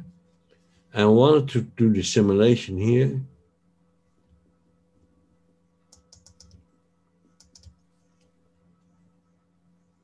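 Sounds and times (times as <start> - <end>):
computer keyboard keystrokes: 5.9 - 6.6, 7.4 - 7.8.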